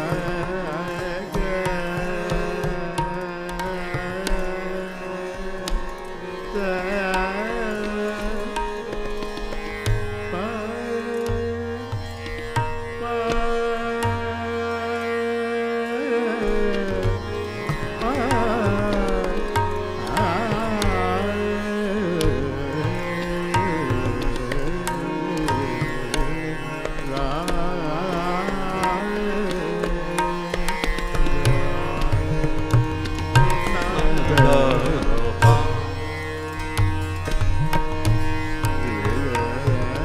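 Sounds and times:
harmonium: 0.0s - 40.0s
tanpura drone: 0.0s - 40.0s
tabla strokes: 16.7s - 40.0s.

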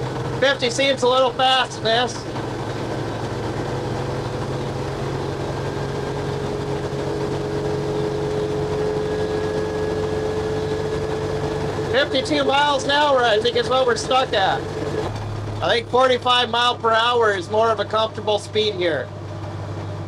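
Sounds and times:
truck engine at high revs: 0.0s - 20.0s.

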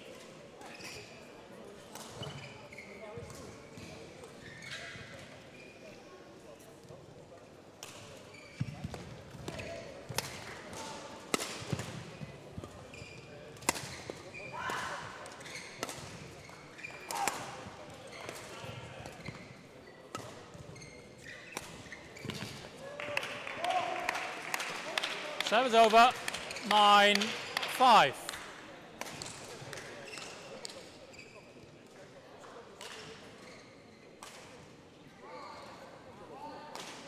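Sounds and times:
shoes squeaking on court floor: 2.2s - 5.9s, 8.3s - 9.8s, 12.8s - 14.5s, 18.0s - 22.6s.

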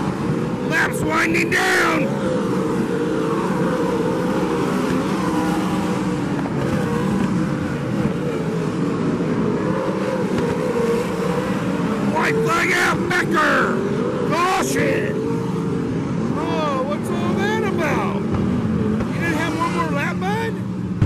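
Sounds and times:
racing car engines: 0.0s - 21.0s.

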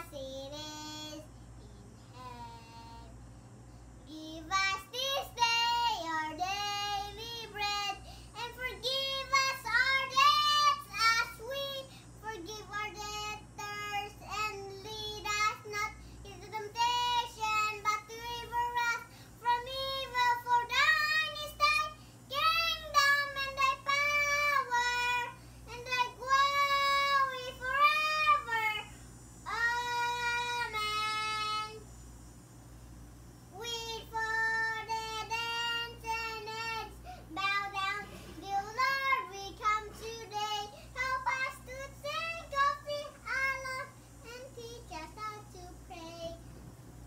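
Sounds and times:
boy singing unaccompanied: 0.0s - 3.2s, 4.0s - 31.9s, 33.5s - 46.5s.

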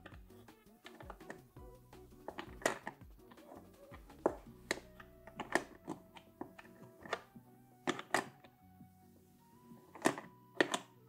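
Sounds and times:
quiet background music: 0.0s - 11.0s
wooden puzzle pieces clicking: 0.8s - 1.5s, 2.2s - 8.5s, 9.9s - 10.9s.

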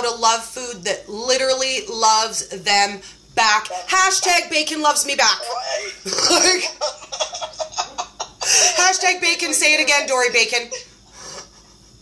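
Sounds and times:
women laughing: 5.2s - 10.9s.

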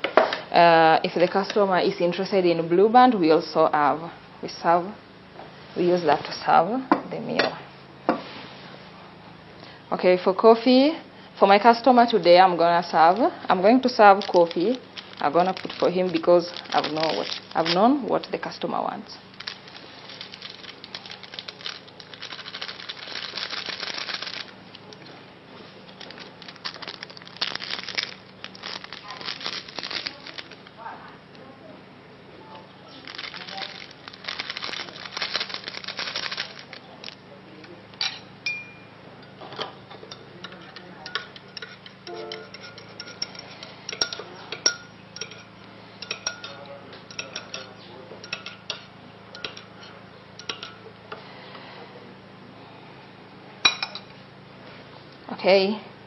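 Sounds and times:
paper sachet rustling and tearing: 13.8s - 18.5s, 19.3s - 24.8s, 25.8s - 30.7s, 32.9s - 37.2s
teaspoon clinking in a mug: 41.0s - 49.8s, 50.4s - 50.8s.

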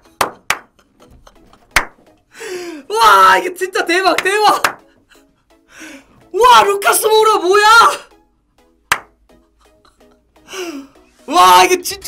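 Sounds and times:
hands clapping: 0.0s - 0.8s, 1.7s - 2.0s, 4.2s - 4.9s, 8.9s - 9.2s
man's excited cry: 2.9s - 3.6s.

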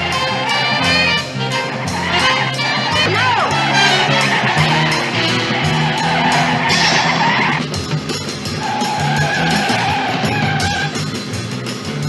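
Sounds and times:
car tyres squealing: 0.0s - 12.0s
chase music with steady beat: 0.0s - 12.0s.

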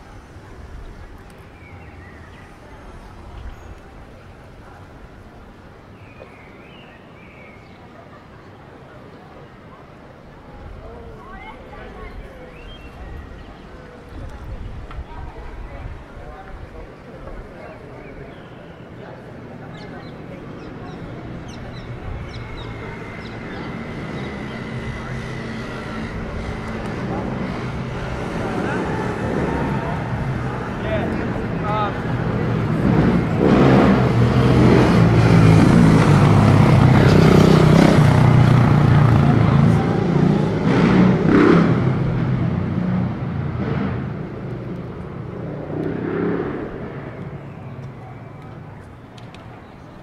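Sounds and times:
motorcycle engine passing: 21.6s - 48.7s.

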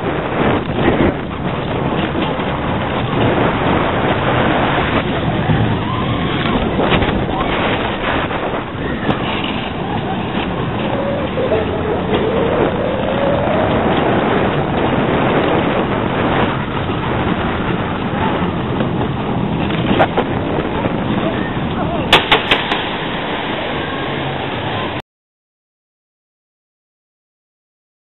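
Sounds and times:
roller coaster rumbling on track: 0.0s - 25.0s
wind on microphone: 0.0s - 25.0s
faint gliding tone: 7.2s - 14.6s.

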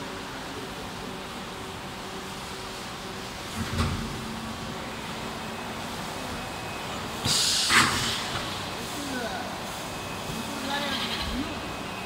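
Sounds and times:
short loud hiss: 7.2s - 8.4s.

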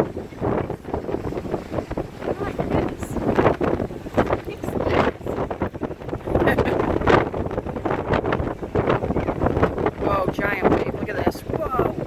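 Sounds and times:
surf breaking on rocks: 0.0s - 12.0s
wind buffeting microphone: 0.0s - 12.0s.

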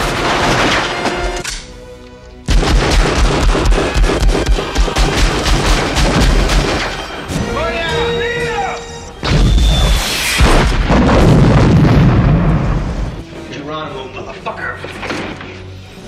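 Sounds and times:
film music score: 0.0s - 16.0s
automatic gunfire: 2.5s - 7.0s
gunshots: 2.5s - 7.2s.

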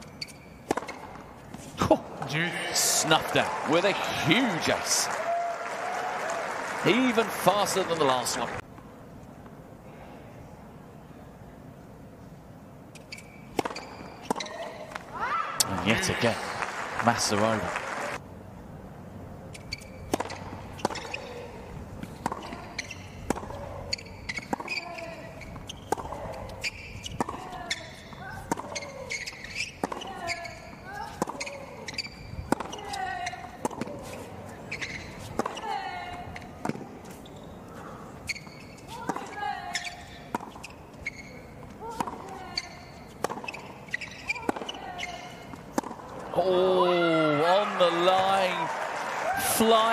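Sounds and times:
tennis ball hit by racket: 0.0s - 1.7s, 13.5s - 14.5s, 19.6s - 37.1s, 38.6s - 40.8s, 41.5s - 46.2s
tennis ball bouncing: 0.0s - 3.4s, 12.9s - 16.3s, 19.5s - 46.5s.

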